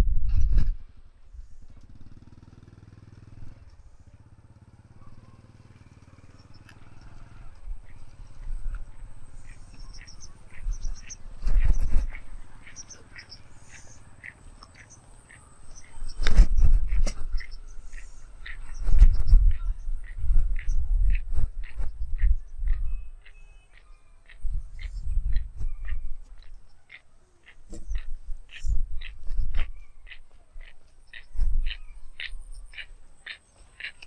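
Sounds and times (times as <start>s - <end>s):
low outdoor rumble: 0.0s - 34.0s
small birds chirping: 3.4s - 34.0s.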